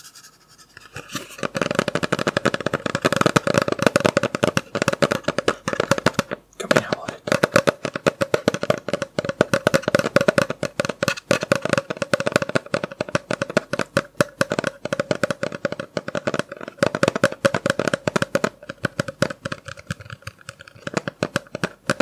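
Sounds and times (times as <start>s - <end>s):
fingernail tapping on hard object: 1.4s - 22.0s.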